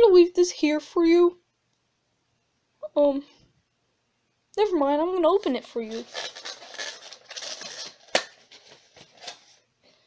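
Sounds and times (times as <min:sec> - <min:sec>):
plastic egg carton crinkling: 0:05.4 - 0:09.7
plastic snap: 0:08.1 - 0:08.4.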